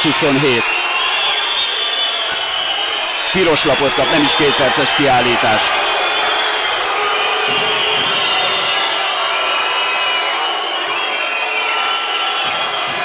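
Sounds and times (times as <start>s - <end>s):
shrill wavering whistles: 0.0s - 13.0s
crowd din: 2.1s - 13.0s.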